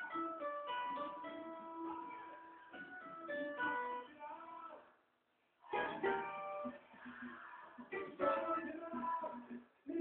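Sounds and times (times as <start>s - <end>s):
plucked small guitar melody: 0.0s - 4.1s, 5.7s - 9.6s.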